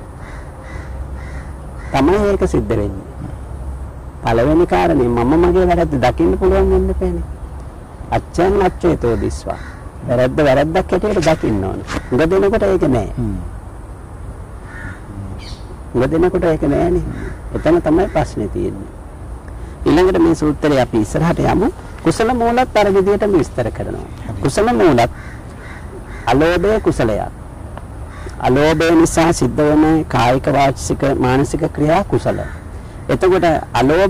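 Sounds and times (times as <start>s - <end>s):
steady low hum: 0.0s - 34.0s
crow cawing: 0.2s - 2.4s, 8.5s - 10.1s, 11.2s - 12.5s, 14.6s - 15.7s, 16.7s - 18.6s, 24.4s - 27.2s, 28.0s - 29.3s, 32.1s - 34.0s.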